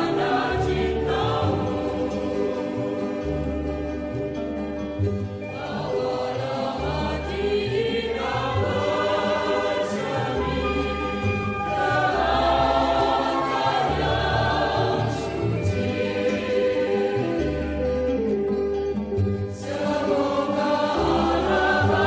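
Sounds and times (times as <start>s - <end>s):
choir singing sustained chords: 0.0s - 22.0s.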